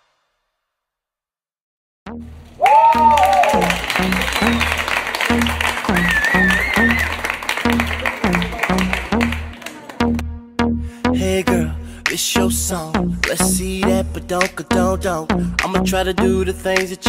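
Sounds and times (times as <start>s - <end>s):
high warbling cry: 2.6s - 4.8s
audience clapping and cheering: 2.6s - 10.3s
loud dance music: 2.6s - 17.0s.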